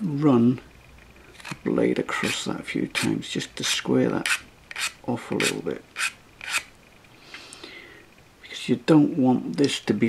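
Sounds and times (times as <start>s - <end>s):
hand file rasping on metal: 4.2s - 6.7s.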